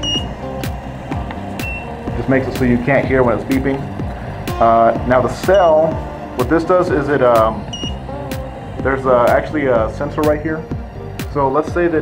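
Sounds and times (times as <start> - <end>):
short high electronic beeps: 0.0 - 0.3, 1.6 - 1.9, 5.4 - 5.9, 7.7 - 8.0
background music with steady beat: 0.0 - 12.0.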